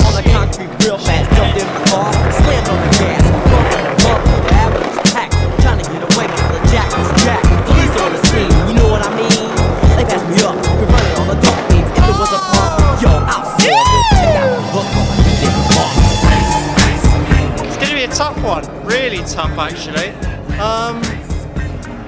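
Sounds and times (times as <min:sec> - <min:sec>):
skateboard clacks: 0:00.0 - 0:14.3
skateboard wheels rolling: 0:00.0 - 0:20.3
music with heavy beat: 0:00.0 - 0:22.0.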